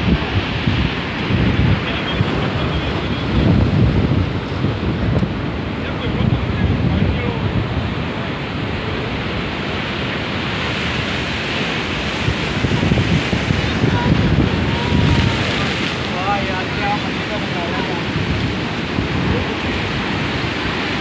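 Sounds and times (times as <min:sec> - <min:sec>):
surf breaking on rocks: 0:00.0 - 0:21.0
wind buffeting microphone: 0:00.0 - 0:21.0.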